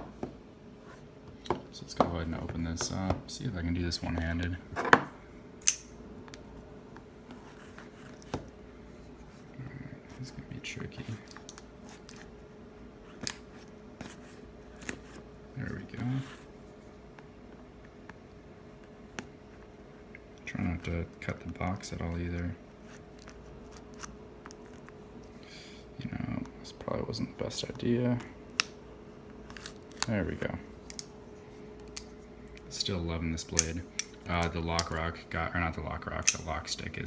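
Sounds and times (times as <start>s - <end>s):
faint steady hum: 0.0s - 37.0s.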